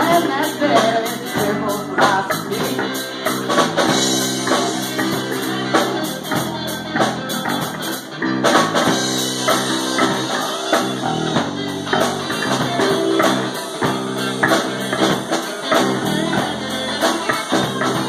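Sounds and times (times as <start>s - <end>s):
drum kit: 0.0s - 18.0s
electric bass: 0.0s - 18.0s
electric guitar: 0.0s - 18.0s.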